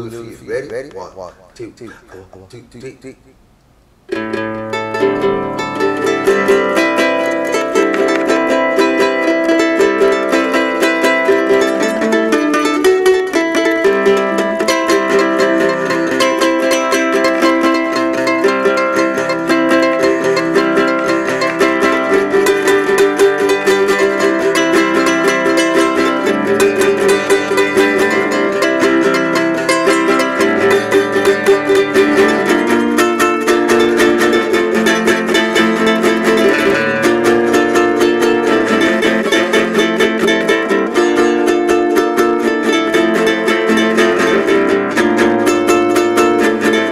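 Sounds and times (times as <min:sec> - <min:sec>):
fingerpicked small guitar: 0:04.1 - 0:46.9.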